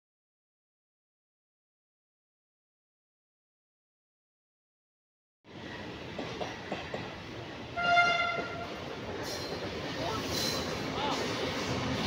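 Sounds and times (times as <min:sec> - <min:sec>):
train wheels clicking on rails: 0:05.9 - 0:12.0
train horn blast: 0:07.8 - 0:08.8.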